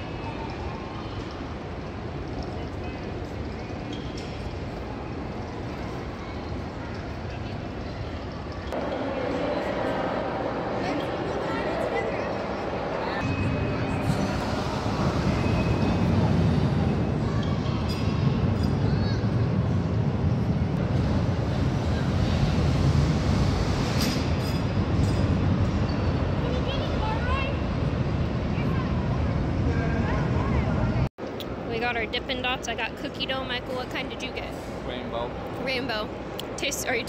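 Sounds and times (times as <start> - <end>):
low rumble of rides and machinery: 0.0 - 32.2
crowd voices: 4.8 - 20.2, 26.3 - 31.7.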